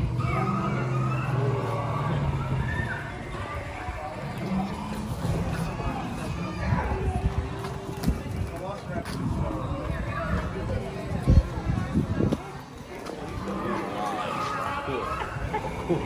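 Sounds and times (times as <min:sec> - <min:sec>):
people talking: 0:00.0 - 0:16.0.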